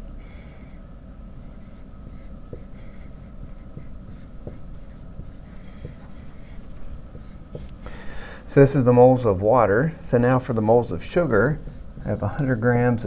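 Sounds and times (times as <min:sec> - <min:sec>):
marker scratching on whiteboard: 0:01.4 - 0:07.8, 0:10.9 - 0:13.0.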